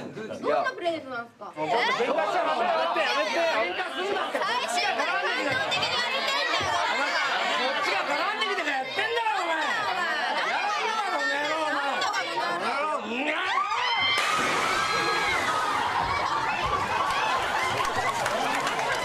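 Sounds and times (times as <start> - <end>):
people talking at once: 0.0 - 13.8.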